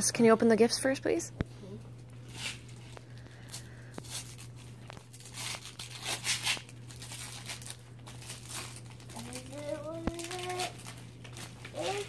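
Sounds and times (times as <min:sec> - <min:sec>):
low steady hum: 0:00.0 - 0:12.0
wrapping paper rustling: 0:02.2 - 0:12.0.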